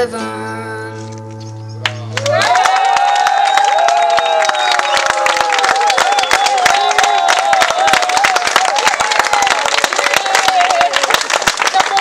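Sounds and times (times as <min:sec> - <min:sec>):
audience clapping: 0:01.8 - 0:12.0
person cheering: 0:02.2 - 0:12.0.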